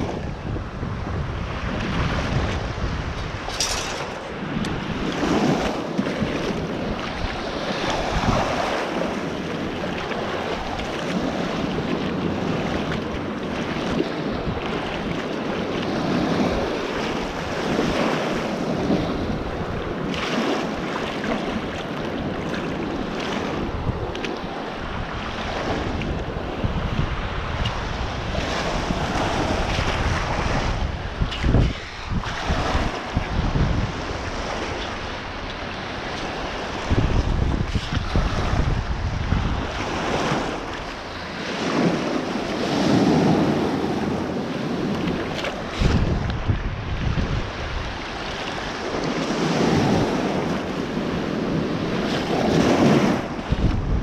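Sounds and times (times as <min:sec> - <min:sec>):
small waves washing over sand: 0:00.0 - 0:54.0
wind buffeting microphone: 0:00.0 - 0:54.0.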